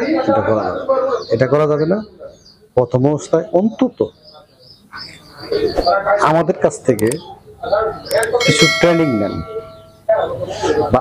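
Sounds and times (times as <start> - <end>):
chicks peeping: 0.0 - 11.0
man talking: 5.7 - 11.0.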